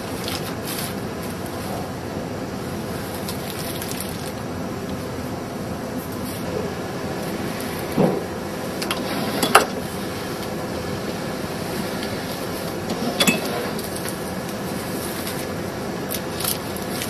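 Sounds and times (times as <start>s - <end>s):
sushi machine running: 0.0s - 17.0s.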